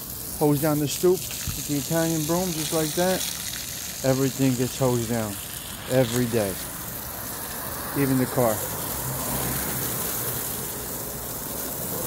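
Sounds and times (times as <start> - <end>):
hose water spattering on car: 0.0 - 12.0.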